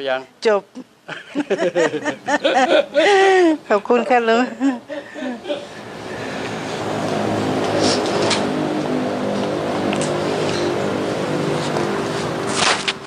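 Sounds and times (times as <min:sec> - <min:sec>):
engine running: 0:04.1 - 0:13.0.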